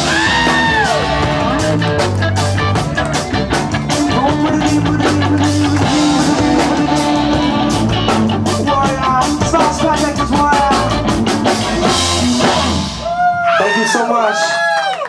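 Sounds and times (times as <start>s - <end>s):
drum kit hits: 0.0s - 13.3s
electric bass: 0.0s - 13.5s
electric guitar: 0.0s - 13.5s.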